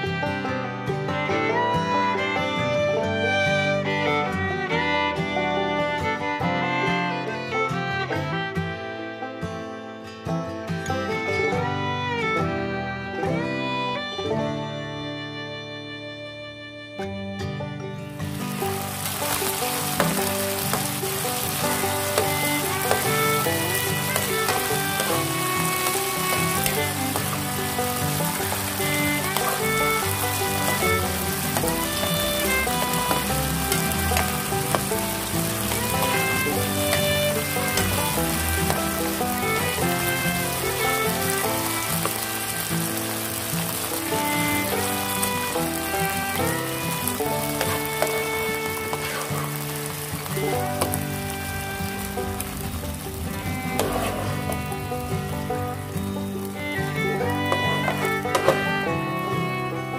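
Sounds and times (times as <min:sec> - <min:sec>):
background music: 0:00.0 - 0:59.9
beef sizzling in a frying pan: 0:18.2 - 0:58.6
spatula stirring in a pan: 0:19.0 - 0:31.8, 0:48.8 - 0:49.6.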